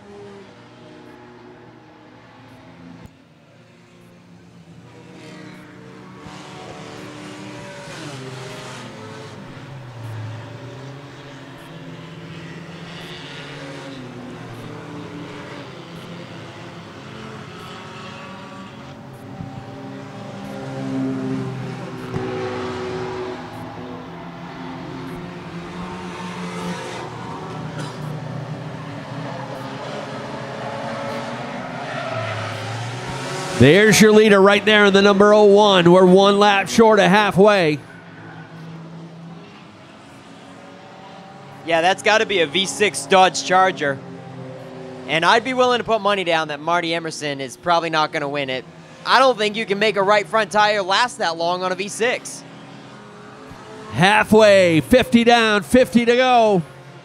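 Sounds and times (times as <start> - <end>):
race car engines passing: 0.0 - 57.0.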